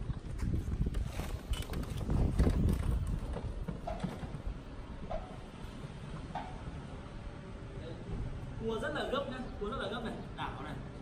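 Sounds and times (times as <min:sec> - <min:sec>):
knocks and rattles: 0:01.2 - 0:05.5.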